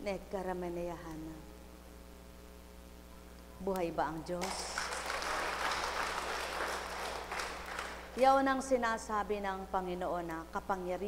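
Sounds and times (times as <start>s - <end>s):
crowd applauding: 4.4s - 8.2s.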